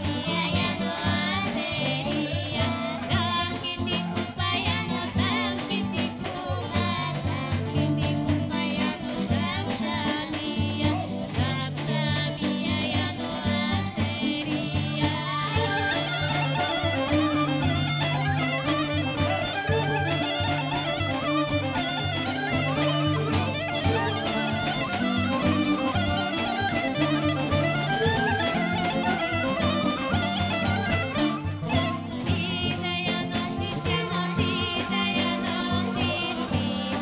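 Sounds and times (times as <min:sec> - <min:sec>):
woman and girl singing: 0:00.0 - 0:19.8, 0:31.7 - 0:37.0
folk band playing dance tune: 0:00.0 - 0:37.0
fast wind instrument melody: 0:13.9 - 0:37.0.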